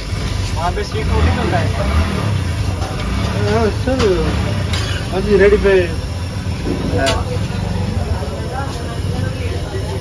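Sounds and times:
faint background voices: 0.5s - 10.0s.

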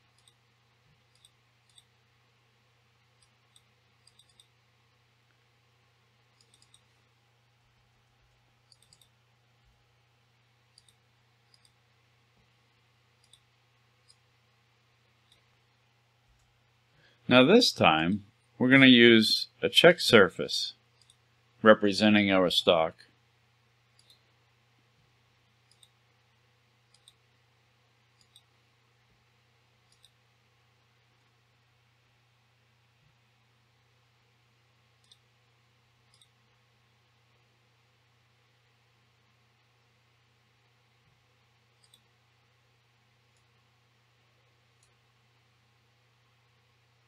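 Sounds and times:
steady low hum: 0.0s - 47.0s
mouse and keyboard clicks: 0.1s - 0.4s, 1.1s - 2.0s, 3.2s - 4.6s, 6.4s - 6.9s, 8.7s - 9.2s, 10.7s - 11.8s, 13.2s - 14.2s, 24.0s - 24.3s, 25.6s - 26.0s, 26.9s - 27.2s, 28.2s - 28.5s, 29.9s - 30.2s, 35.0s - 35.3s, 36.1s - 36.4s, 41.8s - 42.1s.

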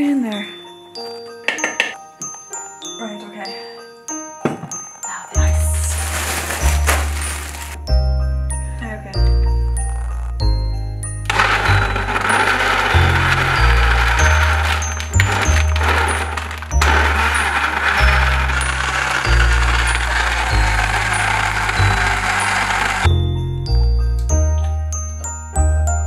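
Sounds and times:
background music with chiming melody: 0.0s - 26.0s
blender whirring: 11.3s - 23.1s.

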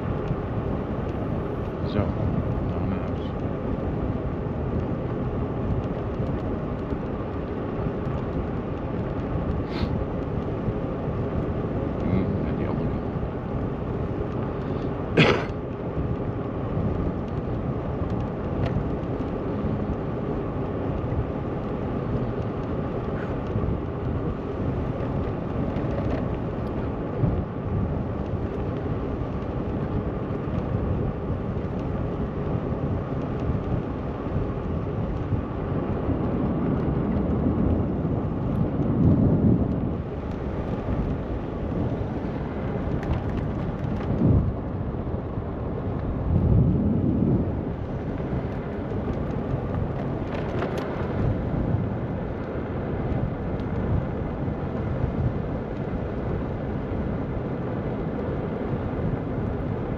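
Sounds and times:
road noise: 0.0s - 59.9s
wind rumbling on microphone: 0.0s - 59.9s.

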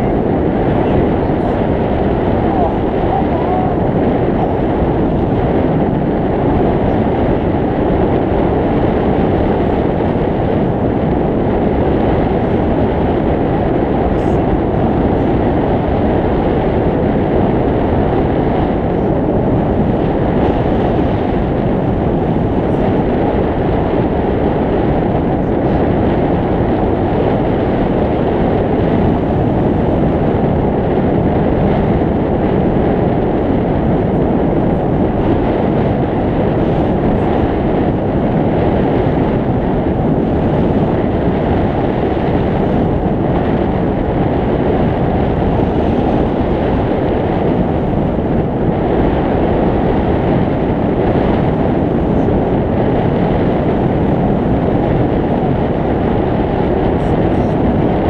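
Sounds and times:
airflow rushing on microphone: 0.0s - 58.0s.

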